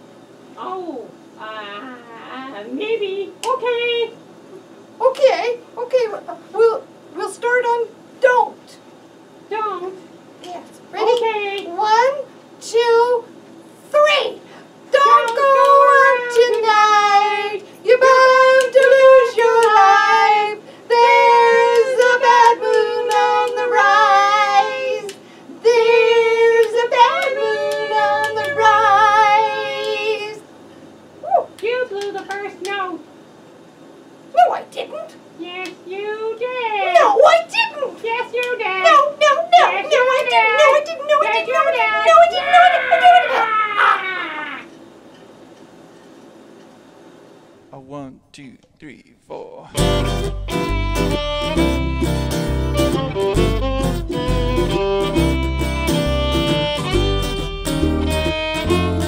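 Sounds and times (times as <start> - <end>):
woman singing unaccompanied: 14.9 - 30.5
singer breathing: 25.2 - 25.6
woman wailing: 38.9 - 44.7.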